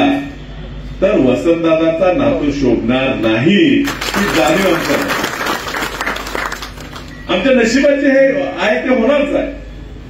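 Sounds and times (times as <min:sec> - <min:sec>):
audience applauding: 0:03.8 - 0:07.2.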